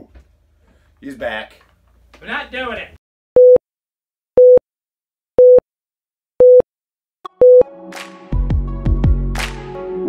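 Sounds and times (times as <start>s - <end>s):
electronic beep tones: 6.4s - 6.6s, 7.4s - 7.6s.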